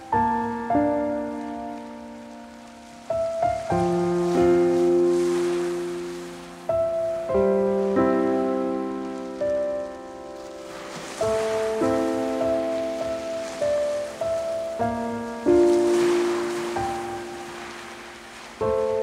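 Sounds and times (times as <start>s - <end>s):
slow piano chords: 0.0s - 19.0s
soft rain-like hiss: 0.0s - 19.0s.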